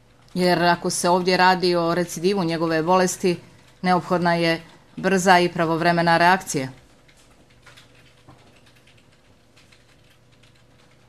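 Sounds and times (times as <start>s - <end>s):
typing on laptop keyboard: 2.8s - 11.0s.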